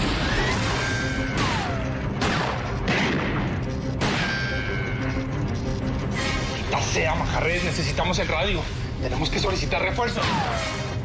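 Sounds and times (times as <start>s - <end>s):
sharp gunshots: 0.0s - 4.6s
tense background music: 0.0s - 11.0s.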